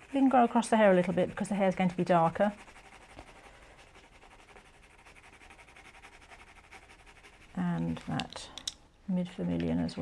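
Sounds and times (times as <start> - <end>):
woman speaking: 0.0 - 2.6, 7.6 - 10.0
pencil scratching on paper: 0.0 - 8.1.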